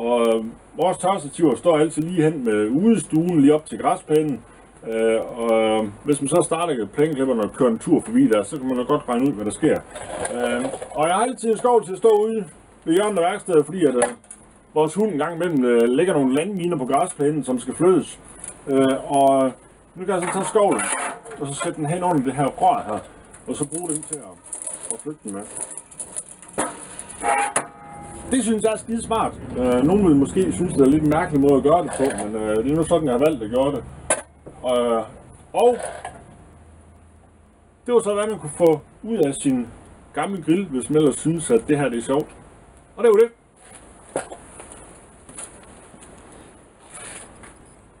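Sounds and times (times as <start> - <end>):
cart wheels rolling and scraping: 9.2 - 12.0, 18.0 - 34.3, 35.6 - 36.3, 43.6 - 47.8.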